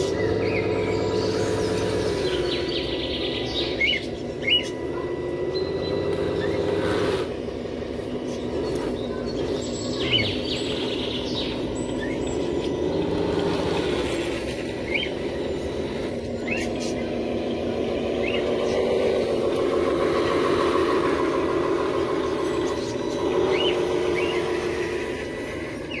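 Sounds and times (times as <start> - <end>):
bird chirps: 0.0 - 7.3, 8.0 - 26.0
model truck electric motors whining: 0.0 - 26.0.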